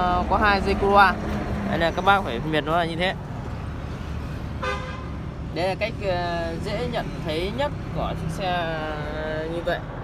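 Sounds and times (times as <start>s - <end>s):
road traffic rumble: 0.0s - 10.0s
car horn toot: 4.6s - 5.2s.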